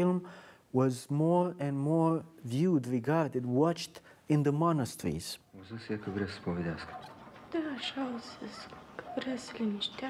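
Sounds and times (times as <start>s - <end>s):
film dialogue: 0.0s - 10.0s.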